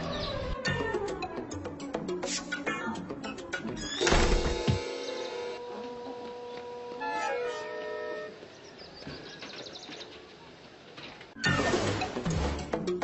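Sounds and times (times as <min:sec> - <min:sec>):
background music with sustained notes: 0:00.0 - 0:08.7.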